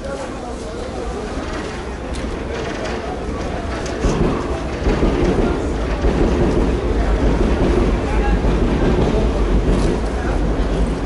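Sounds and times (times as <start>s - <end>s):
train passing overhead rumble: 0.5s - 11.0s.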